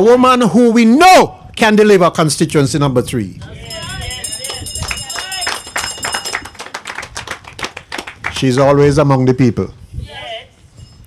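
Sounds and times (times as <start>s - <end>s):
audience clapping: 4.4s - 8.9s.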